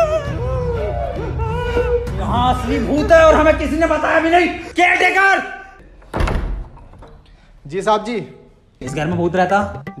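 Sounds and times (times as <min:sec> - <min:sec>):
door thudding shut: 0:06.1 - 0:06.8.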